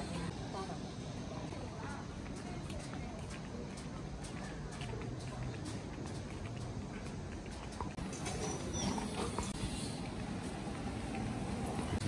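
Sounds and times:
street noise rumble: 0.0s - 12.0s
footsteps on pavement: 1.5s - 12.0s.

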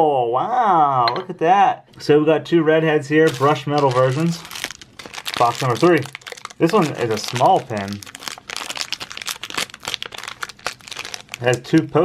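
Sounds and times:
foil bag crinkling: 3.2s - 12.0s.

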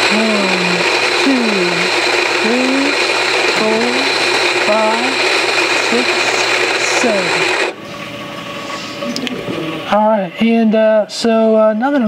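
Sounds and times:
electric coffee grinder running: 0.0s - 7.8s.

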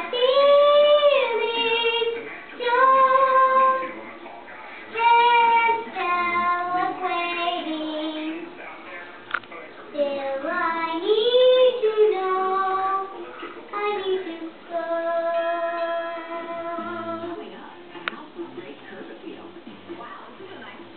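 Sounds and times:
girl singing unaccompanied: 0.0s - 4.0s, 4.9s - 8.5s, 10.0s - 17.4s.

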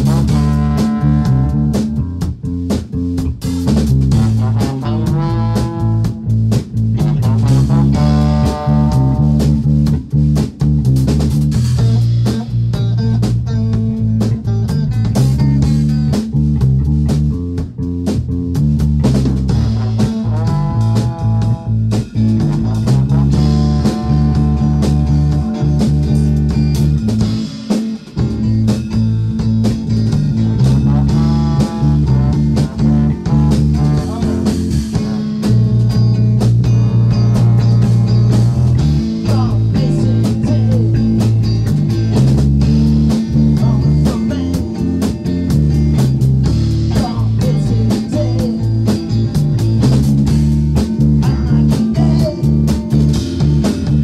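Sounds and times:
trombone: 0.0s - 2.3s, 3.6s - 9.9s, 11.2s - 14.2s, 19.4s - 27.4s, 29.5s - 40.9s
drum kit: 0.0s - 54.0s
electric guitar: 0.0s - 54.0s
heavy bass line: 0.0s - 54.0s.

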